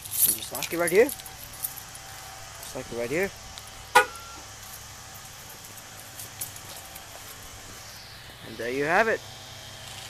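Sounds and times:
steady low hum: 0.0s - 10.0s
car horn chirp: 3.9s - 4.5s.

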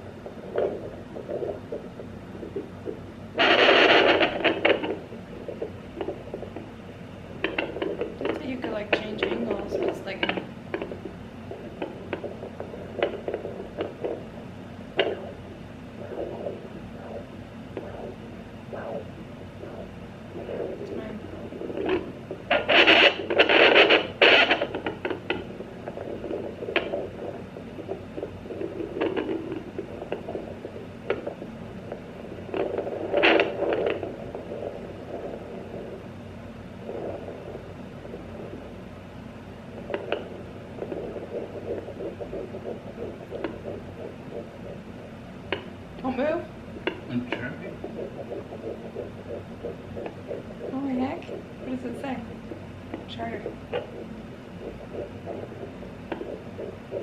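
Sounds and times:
doppler speaker hissing and crackling: 0.0s - 57.0s.

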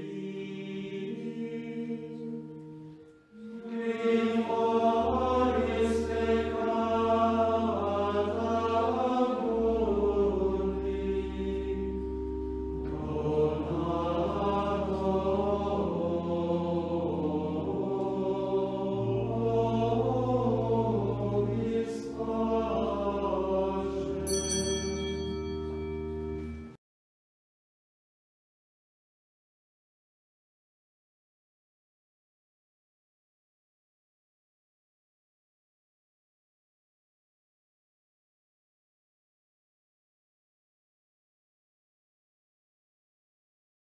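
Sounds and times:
choir singing sacred music: 0.0s - 26.8s.

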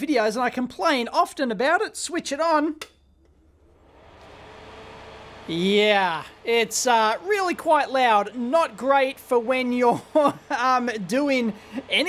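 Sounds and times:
fan rushing air: 3.4s - 12.0s.

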